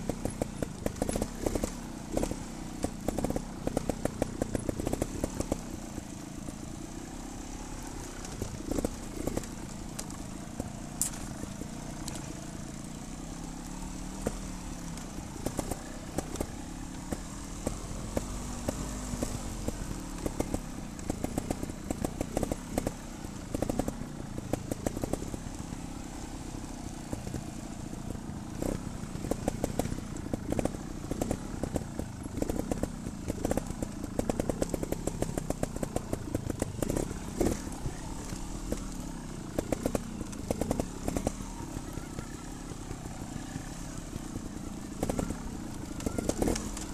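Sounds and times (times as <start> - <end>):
bike rattling over rocks: 0.0 - 46.9
motorcycle engine at low revs: 0.0 - 46.9.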